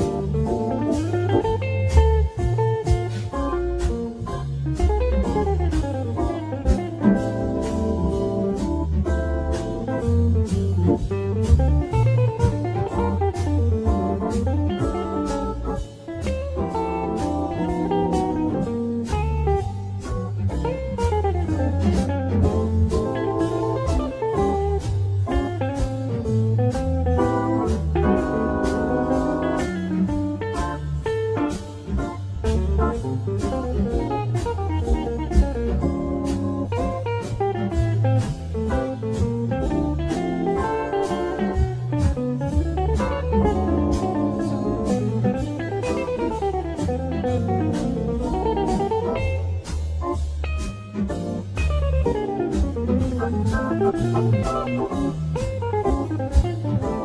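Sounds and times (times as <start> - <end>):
bass: 0.0 - 57.0
electric guitar lead: 0.0 - 57.0
steady drum beat: 0.0 - 57.0.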